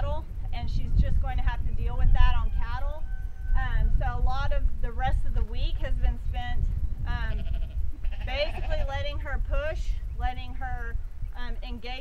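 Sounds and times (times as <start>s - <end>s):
wind rumble on microphone: 0.0s - 12.0s
farm animal bleating: 2.0s - 3.6s, 7.2s - 9.2s.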